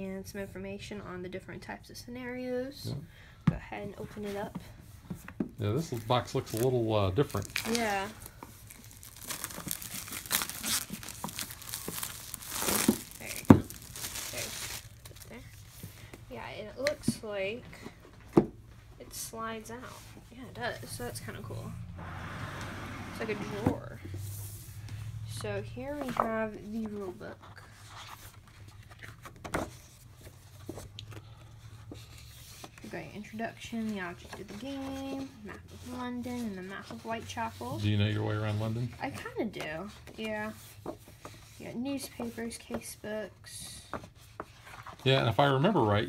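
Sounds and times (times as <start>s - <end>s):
plastic shrink-wrap tearing: 6.0s - 15.6s.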